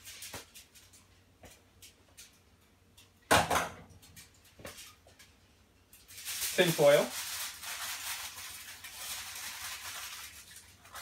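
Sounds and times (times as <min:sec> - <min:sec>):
aluminium foil crinkling: 0:00.0 - 0:01.2, 0:04.0 - 0:11.0.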